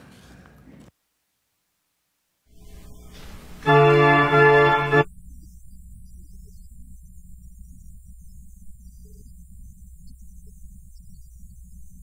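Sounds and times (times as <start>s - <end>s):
low electrical hum and rumble: 2.5s - 12.0s.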